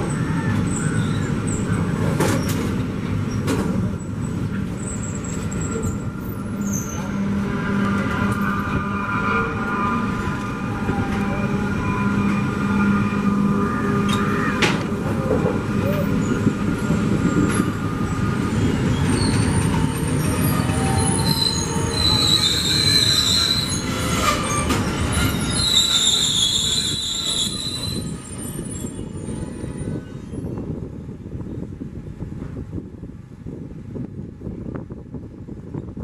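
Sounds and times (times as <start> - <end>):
train wheels squealing: 0.0 - 2.6, 4.2 - 7.3, 15.2 - 30.6
train rumbling on track: 0.0 - 36.0.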